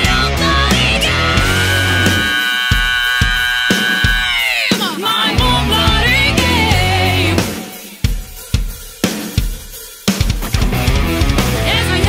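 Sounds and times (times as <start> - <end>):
drum hits: 0.0 - 11.7.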